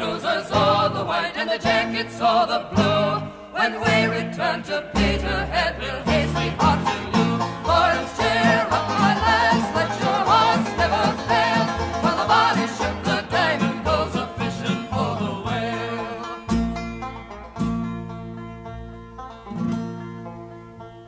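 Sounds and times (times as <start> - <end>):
plucked strings: 0.0 - 21.0.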